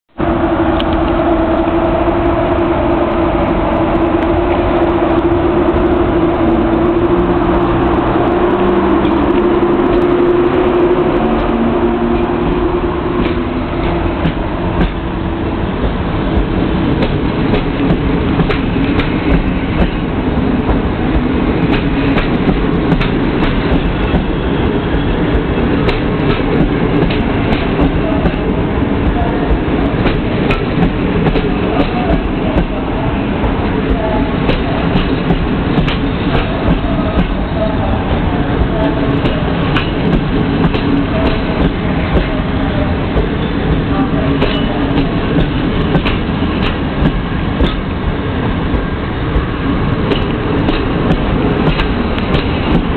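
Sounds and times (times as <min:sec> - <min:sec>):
train coaches rumbling past: 0:00.1 - 0:52.9
wheels clicking over rail joints: 0:38.1 - 0:48.0, 0:48.7 - 0:52.9.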